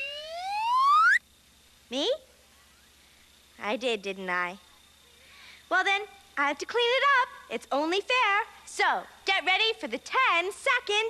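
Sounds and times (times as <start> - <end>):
slide whistle rising: 0.0 - 1.2.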